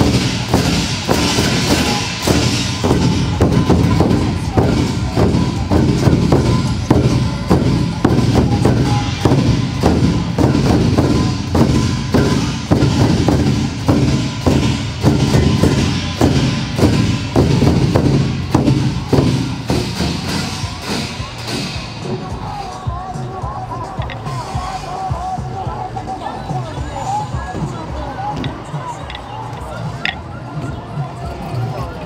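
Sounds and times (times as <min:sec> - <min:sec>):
barrel drums beaten with sticks: 0:00.0 - 0:25.8.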